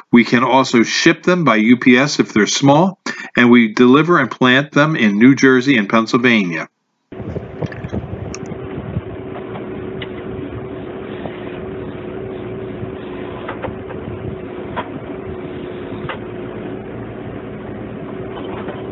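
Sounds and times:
engine droning: 7.1s - 18.9s.

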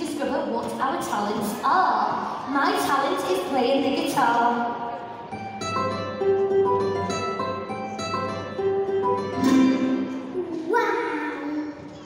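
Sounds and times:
acoustic guitar picked notes: 5.2s - 11.3s
strummed guitar chords: 5.3s - 10.5s.

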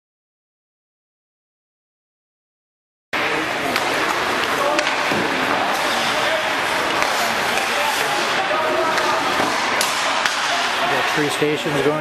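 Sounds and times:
hockey sticks and pucks clacking: 3.2s - 12.0s
voices in indoor rink: 3.2s - 12.0s
skates hissing on ice: 5.7s - 10.7s.

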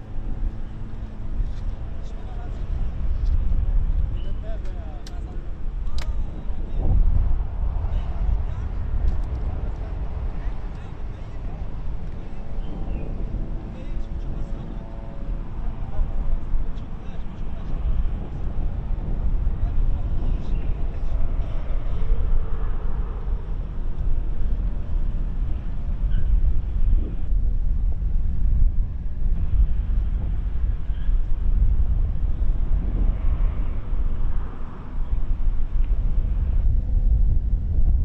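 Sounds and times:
city ambience rumble: 0.0s - 38.0s
faint indistinct voices: 0.5s - 24.6s.

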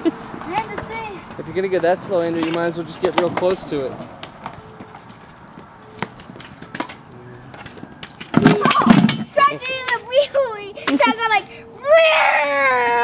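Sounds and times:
child's voice: 0.4s - 1.3s, 8.6s - 12.8s
small wheels clacking on concrete: 0.4s - 11.1s.

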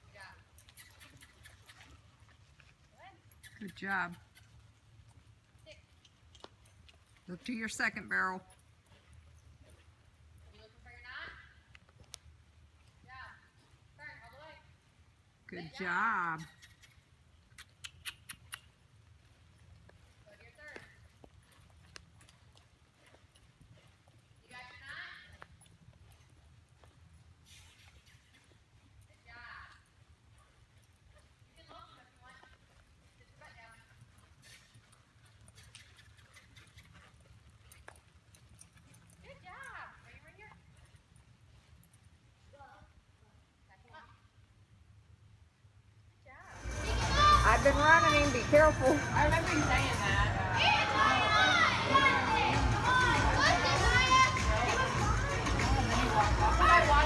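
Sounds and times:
horse hoofbeats on dirt: 0.0s - 43.0s, 46.5s - 57.0s.

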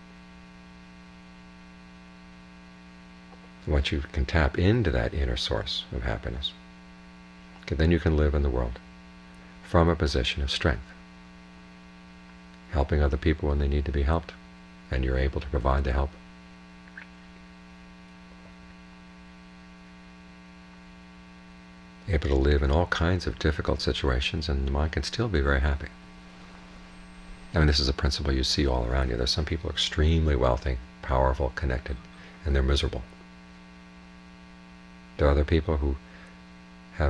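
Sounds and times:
electrical mains hum: 0.0s - 37.0s.

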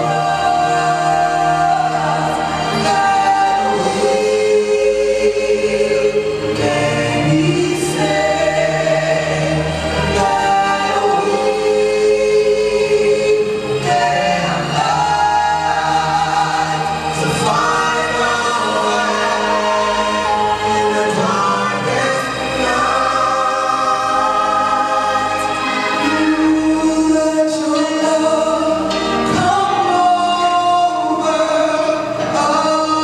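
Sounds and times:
gospel group singing in harmony: 0.0s - 33.0s.

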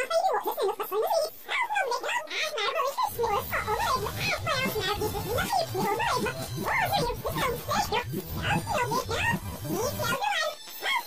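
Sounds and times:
distorted pitch-shifted voices: 0.0s - 11.0s.

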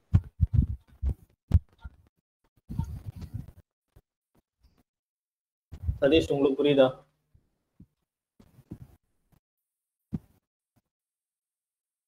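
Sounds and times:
low muffled thumps: 0.0s - 1.8s, 5.7s - 6.0s.

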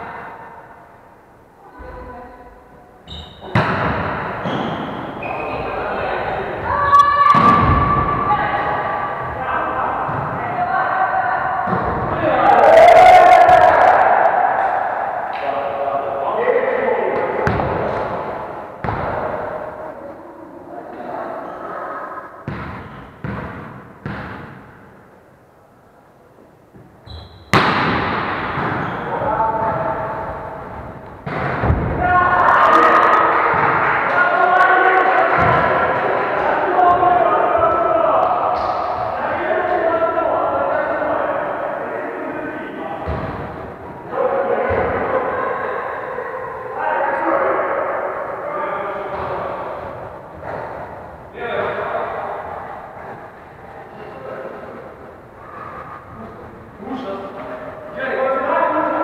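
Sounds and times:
players' voices and shouts echoing: 0.0s - 59.0s.

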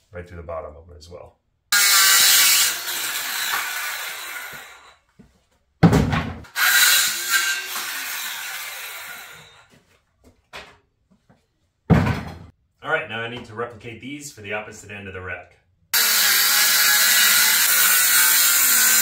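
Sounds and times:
circular saw cutting wood: 1.8s - 5.0s, 6.5s - 9.7s, 16.0s - 19.0s
heavy knock: 5.8s - 6.5s.

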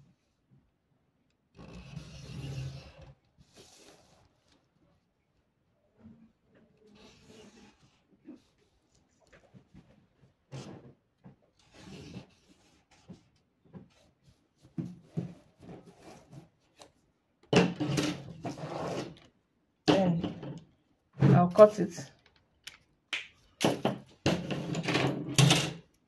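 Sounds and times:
marker scraping on paper: 1.6s - 4.2s, 6.9s - 9.0s, 11.6s - 13.2s, 17.8s - 19.2s.

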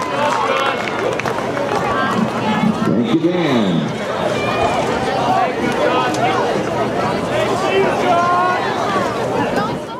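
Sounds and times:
spectators chatting: 0.0s - 9.9s.

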